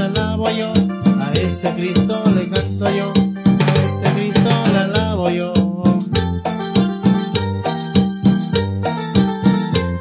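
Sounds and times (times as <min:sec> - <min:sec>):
bass and drums accompaniment: 0:00.0 - 0:10.0
keyboard lead melody: 0:00.0 - 0:10.0.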